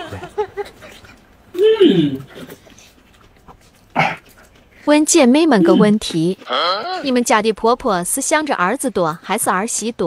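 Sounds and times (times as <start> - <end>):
woman speaking: 4.9 - 10.0.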